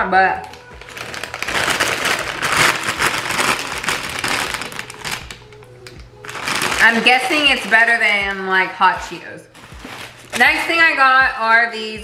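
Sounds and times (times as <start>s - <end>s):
plastic bag crinkling: 0.4s - 8.5s, 9.5s - 10.8s.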